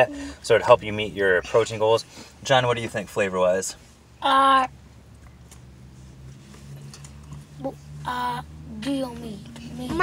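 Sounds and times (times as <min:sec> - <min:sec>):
car cabin hum: 0:00.0 - 0:10.0
child voice: 0:04.2 - 0:04.7, 0:07.6 - 0:10.0.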